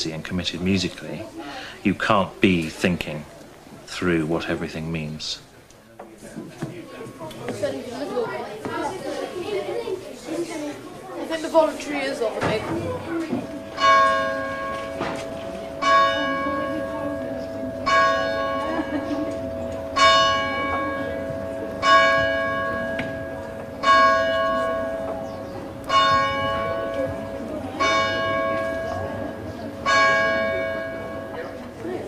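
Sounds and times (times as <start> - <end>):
church bell tolling: 12.4 - 32.0.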